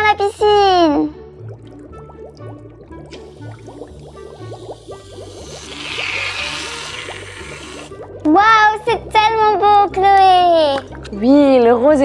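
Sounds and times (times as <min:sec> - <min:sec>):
background music with steady beat: 0:00.1 - 0:05.6
aerosol can hissing: 0:04.4 - 0:08.0.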